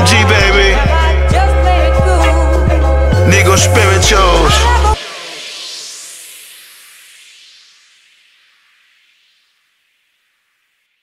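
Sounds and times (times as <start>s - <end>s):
hiss of noise: 5.0s - 11.0s.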